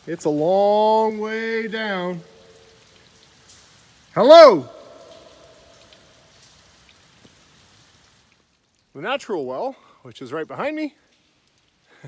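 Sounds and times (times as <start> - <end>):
faint hiss: 0.0 - 12.0
shout echoing in cave: 0.2 - 2.7, 4.1 - 6.1.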